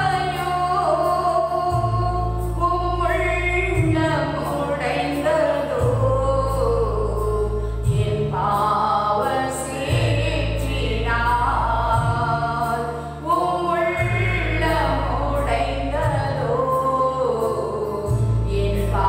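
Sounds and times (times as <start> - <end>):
low bass notes: 0.0 - 19.0
woman singing a hymn: 0.0 - 19.0.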